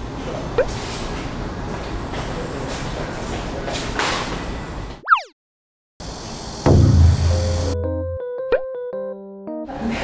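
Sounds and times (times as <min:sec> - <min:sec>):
low hum: 0:06.7 - 0:08.2
rising boing effect: 0:06.7 - 0:08.7
plucky synthesizer jingle: 0:06.7 - 0:09.4.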